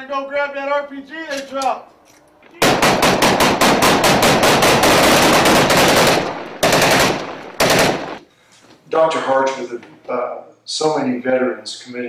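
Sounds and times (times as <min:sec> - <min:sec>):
automatic rifle fire: 0:02.6 - 0:08.2.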